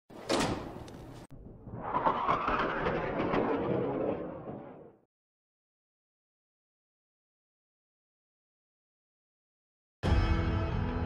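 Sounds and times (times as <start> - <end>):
hangar doors rattling open: 0.1 - 1.2
metal door clunk: 0.1 - 1.2.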